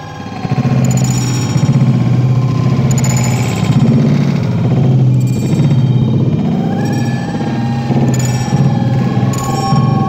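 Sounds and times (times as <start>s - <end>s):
loud music with droning note: 0.0s - 10.0s.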